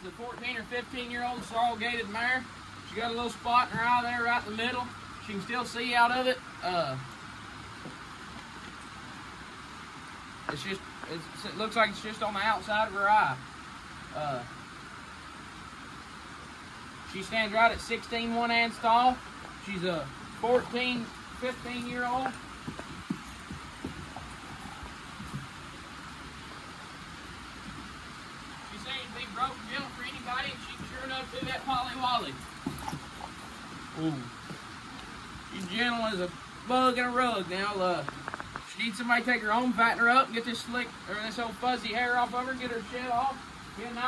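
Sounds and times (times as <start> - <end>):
background hiss: 0.0 - 44.0
steady background noise: 0.0 - 44.0
faint low thuds: 20.3 - 35.0.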